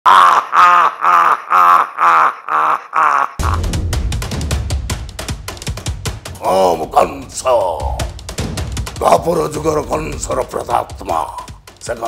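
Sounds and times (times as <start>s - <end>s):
man laughing loudly: 0.1s - 3.7s.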